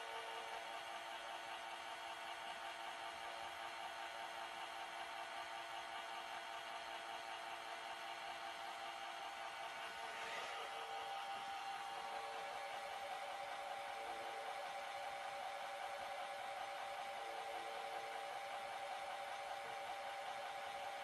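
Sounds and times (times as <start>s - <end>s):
robot vacuum whirring: 9.9s - 11.0s.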